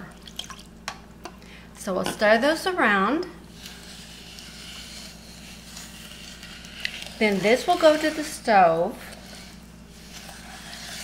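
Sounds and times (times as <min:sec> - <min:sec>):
low steady hum: 0:00.0 - 0:11.0
wooden spoon scraping saucepan: 0:03.5 - 0:11.0.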